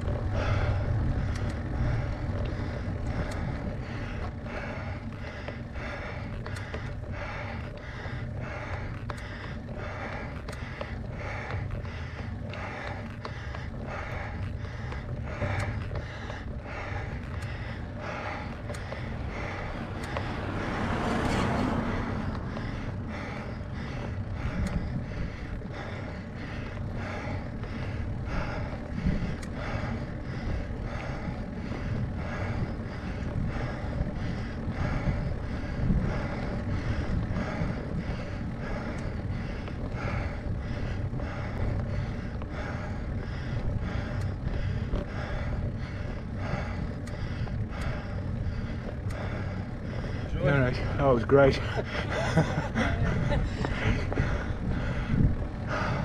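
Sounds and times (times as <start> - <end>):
car passing: 0.0 - 56.0
cyclist breathing hard: 0.0 - 56.0
low steady rumble: 0.0 - 56.0.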